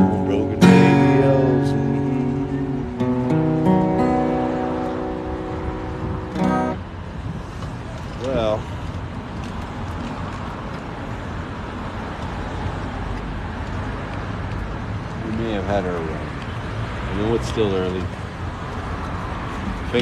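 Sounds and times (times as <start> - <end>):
acoustic guitar chord ringing: 0.0 - 6.9
guitar strum: 0.0 - 6.9
city street traffic: 0.0 - 20.0.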